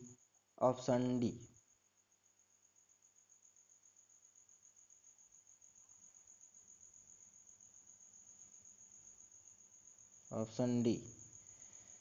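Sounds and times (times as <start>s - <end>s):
cricket trilling: 0.0s - 12.0s.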